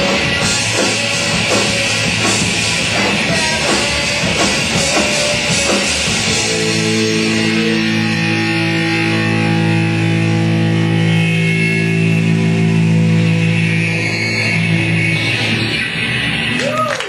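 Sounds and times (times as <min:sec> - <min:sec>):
distorted electric guitar chord: 0:00.0 - 0:16.6.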